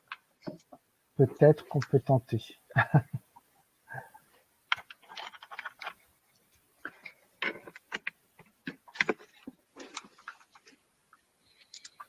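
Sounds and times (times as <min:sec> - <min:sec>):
headset being handled: 0:04.7 - 0:06.0, 0:06.8 - 0:10.8.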